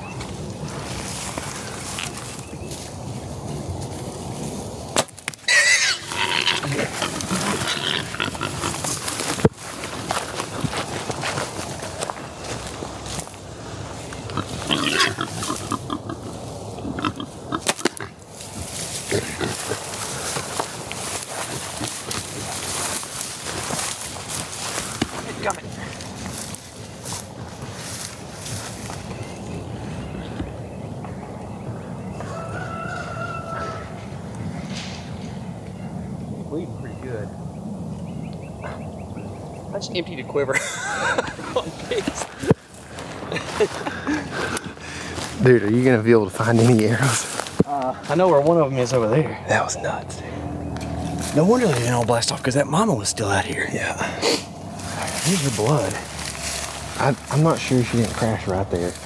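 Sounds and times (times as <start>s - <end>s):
rustling of dry grass: 0.0s - 59.0s
hogs squealing and grunting: 5.4s - 9.4s, 14.2s - 18.2s, 18.9s - 22.9s, 52.4s - 59.0s.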